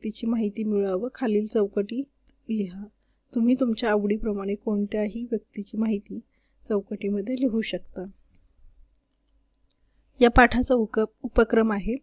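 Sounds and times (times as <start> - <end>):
person speaking: 0.0 - 8.2.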